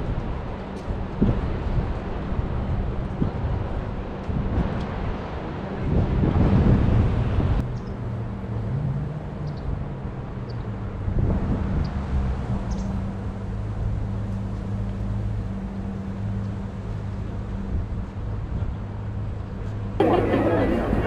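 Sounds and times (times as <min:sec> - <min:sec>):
wind on microphone: 0:00.0 - 0:08.0, 0:08.6 - 0:21.0
low engine hum: 0:00.0 - 0:21.0.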